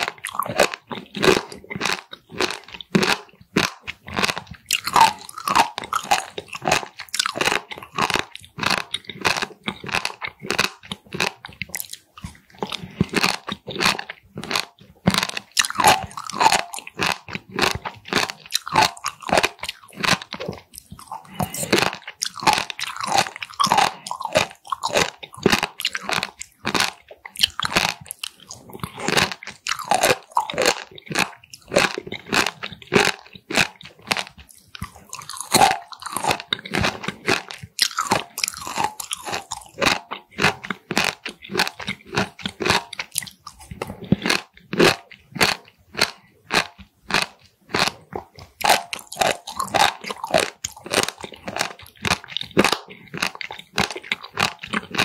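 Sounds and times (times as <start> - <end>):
crunchy chewing: 0.0 - 55.0.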